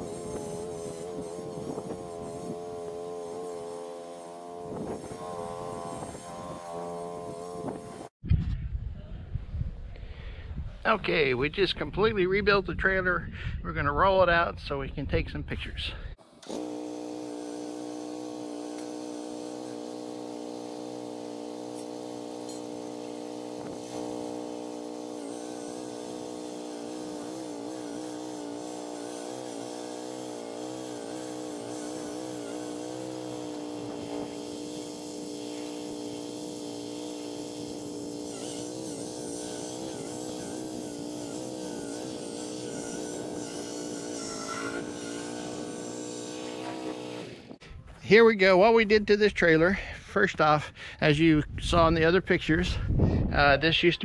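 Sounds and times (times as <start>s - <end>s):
riding mower engine running: 0.0s - 8.1s, 16.2s - 47.6s.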